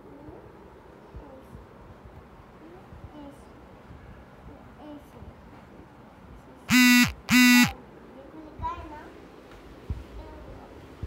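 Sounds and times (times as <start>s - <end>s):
buzzy honks: 6.7s - 7.8s.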